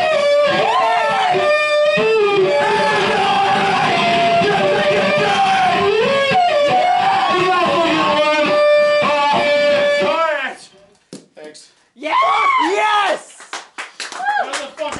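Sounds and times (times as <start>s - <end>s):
loud voices: 0.0s - 10.3s
screamed vocals: 0.5s - 1.5s, 2.4s - 6.0s, 12.0s - 13.2s
distorted electronic noise: 2.2s - 8.4s.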